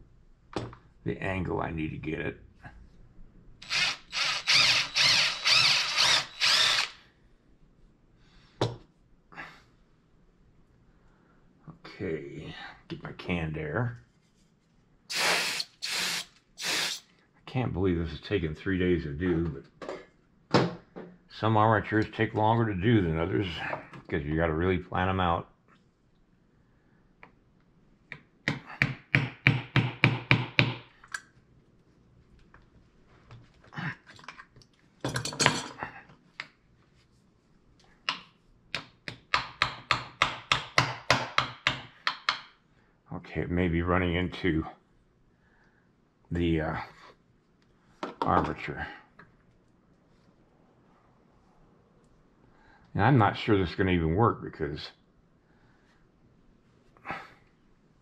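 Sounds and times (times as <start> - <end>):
compressed air spray hiss: 15.1 - 17.0.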